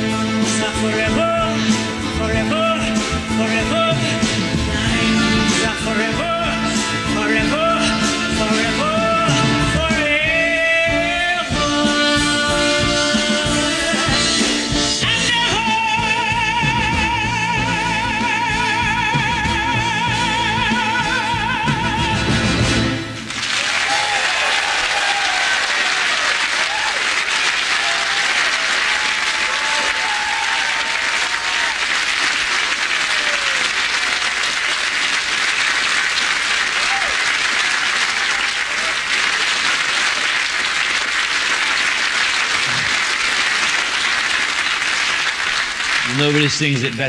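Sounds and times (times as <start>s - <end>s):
audience applauding: 23.2s - 47.0s.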